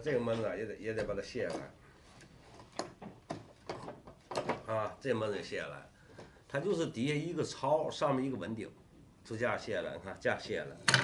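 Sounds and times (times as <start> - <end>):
small wooden clicks and knocks: 2.6 - 4.7.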